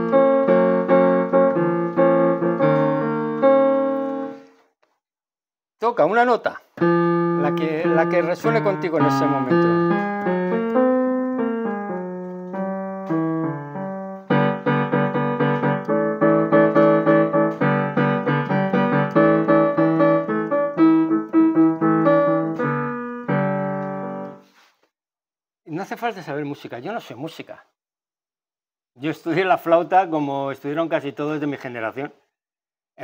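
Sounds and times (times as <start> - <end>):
digital piano playing: 0.0 - 4.5, 6.8 - 24.4.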